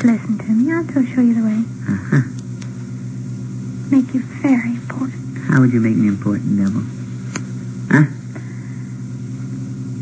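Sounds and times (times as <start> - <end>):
low electrical hum: 0.0 - 10.0
tape hiss: 0.0 - 10.0.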